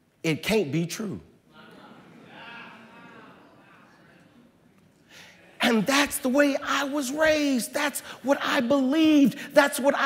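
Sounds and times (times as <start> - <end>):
murmur of congregation voices: 1.5 - 10.0.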